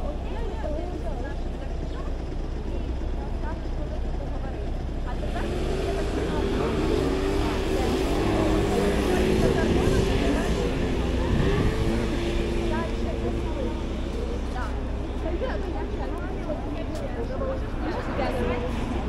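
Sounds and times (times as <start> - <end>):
low traffic rumble: 0.0 - 19.0
passers-by talking: 0.0 - 19.0
vehicle engine humming: 0.0 - 19.0.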